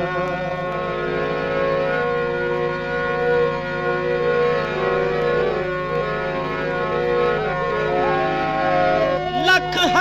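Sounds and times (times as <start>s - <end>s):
harmonium holding chords: 0.0s - 10.0s.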